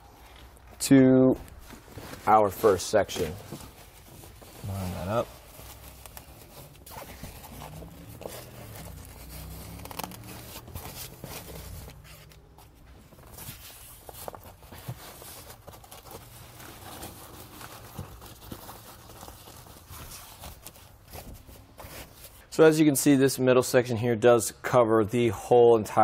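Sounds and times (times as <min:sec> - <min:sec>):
fabric cover rustling: 0:00.0 - 0:22.5.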